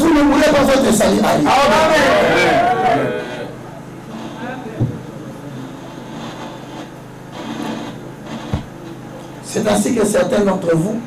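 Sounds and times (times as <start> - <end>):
short thump: 4.8 - 5.0, 8.5 - 8.8.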